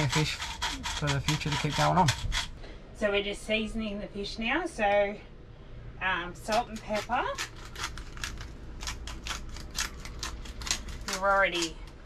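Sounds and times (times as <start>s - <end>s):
seasoning grinder crunching: 0.0s - 2.5s, 6.4s - 12.0s.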